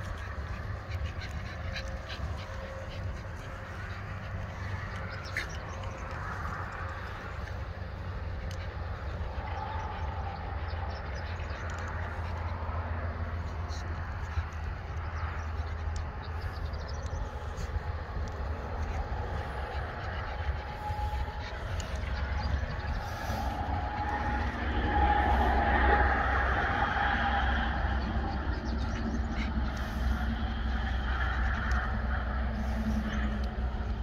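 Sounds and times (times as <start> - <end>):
deep rumble: 0.0 - 34.0
distant road traffic: 0.0 - 34.0
vehicle passing: 0.0 - 34.0.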